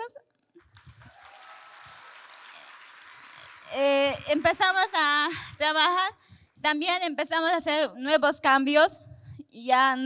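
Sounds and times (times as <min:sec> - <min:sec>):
audience applauding: 0:00.6 - 0:05.8.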